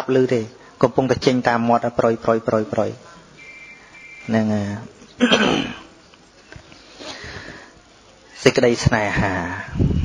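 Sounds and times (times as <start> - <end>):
man preaching: 0.0 - 3.1, 4.2 - 5.0, 8.4 - 9.8
breath sounds: 6.7 - 7.9.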